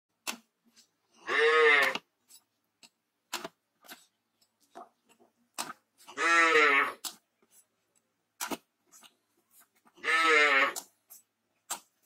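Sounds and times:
farm animal cry: 0:01.2 - 0:02.0, 0:06.1 - 0:07.0, 0:10.0 - 0:10.9.

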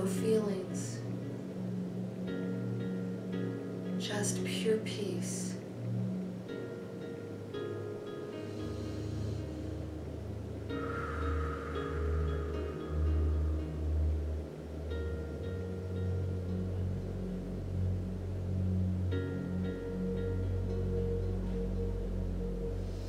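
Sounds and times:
ambient meditation music: 0:00.0 - 0:23.0.

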